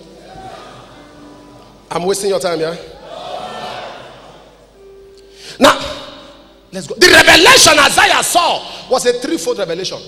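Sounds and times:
man shouting: 0:07.0 - 0:08.6.

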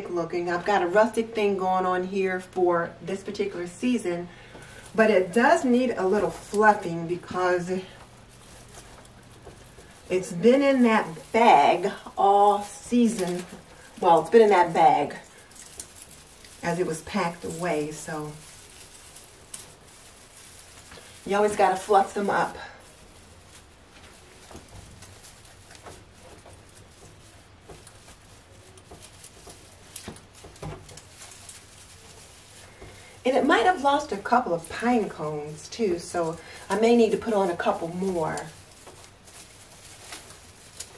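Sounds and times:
low steady hum: 0:00.0 - 0:40.9
rustling artificial pine branches: 0:00.0 - 0:40.9.

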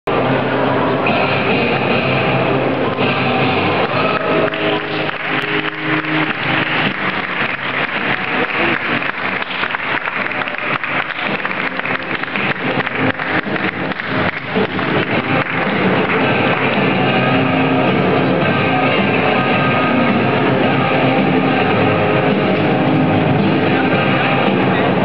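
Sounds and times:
faint music: 0:00.1 - 0:25.0
audience applauding: 0:03.8 - 0:17.4.

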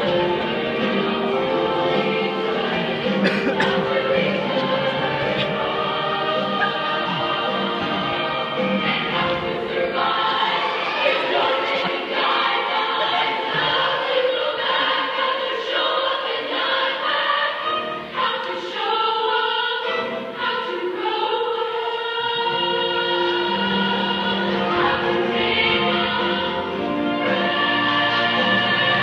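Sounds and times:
women singing a pop song: 0:00.0 - 0:29.0.

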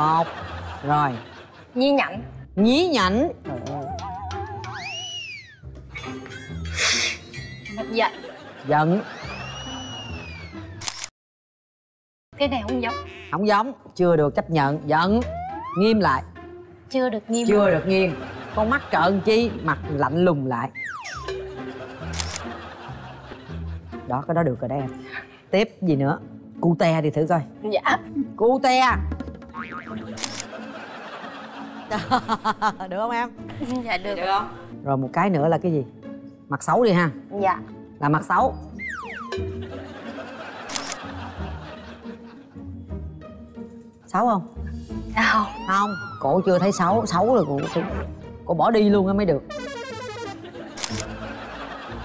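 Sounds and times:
light background music: 0:00.0 - 0:11.1, 0:12.4 - 0:52.0
camera shutter effect: 0:10.8 - 0:11.1, 0:22.0 - 0:22.5, 0:30.0 - 0:30.6, 0:40.7 - 0:41.1, 0:49.5 - 0:51.2
springy boing effect: 0:15.2 - 0:16.0.

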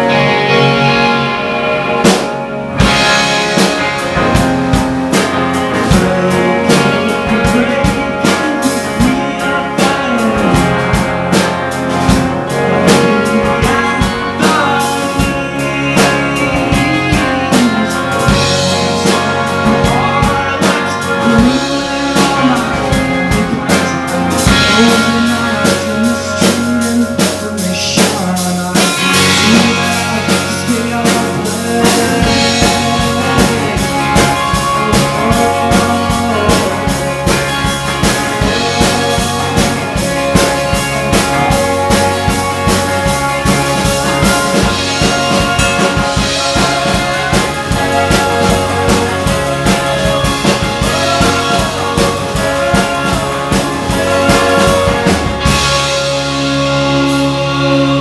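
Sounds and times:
bass guitar: 0:00.0 - 0:58.0
drum kit: 0:00.0 - 0:58.0
electric guitars: 0:00.0 - 0:58.0.

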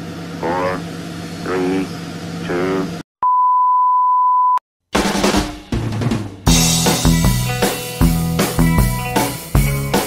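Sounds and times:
test tone beep: 0:03.2 - 0:04.6.

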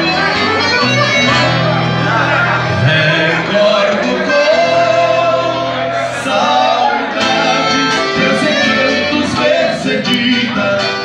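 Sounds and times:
accordion: 0:00.0 - 0:11.0
acoustic guitar: 0:00.0 - 0:11.0.

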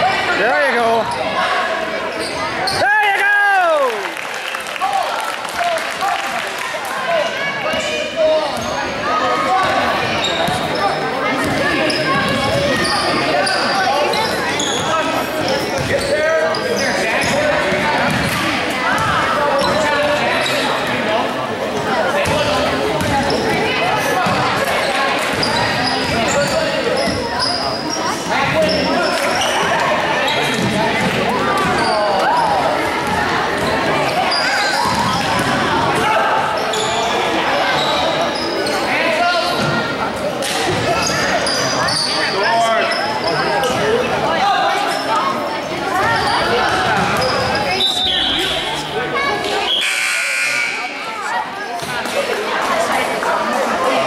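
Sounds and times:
sneakers squeaking: 0:01.0 - 0:02.9, 0:07.2 - 0:20.9, 0:21.8 - 0:44.1, 0:44.7 - 0:52.0
voices calling out: 0:05.4 - 0:54.0.

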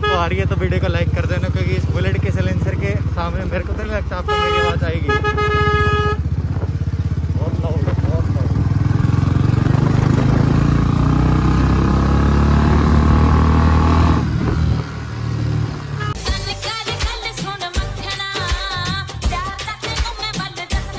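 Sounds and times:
motorcycle engine accelerating: 0:00.0 - 0:16.2.

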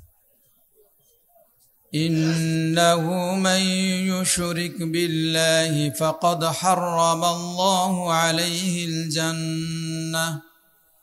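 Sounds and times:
man chanting over a microphone: 0:02.0 - 0:10.5.

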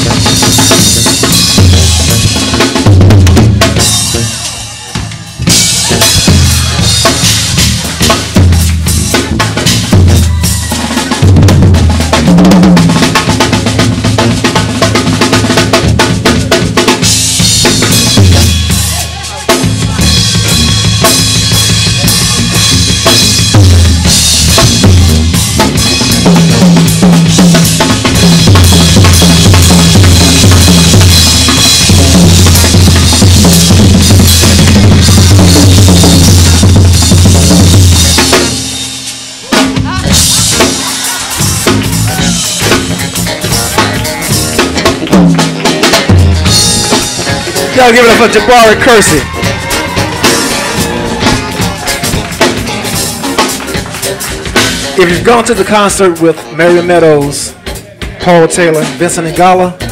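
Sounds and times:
jazz drum solo: 0:00.0 - 0:59.9.

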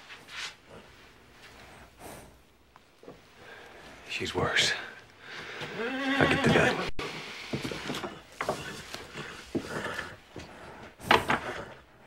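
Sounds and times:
horse whinnying: 0:05.7 - 0:07.0.

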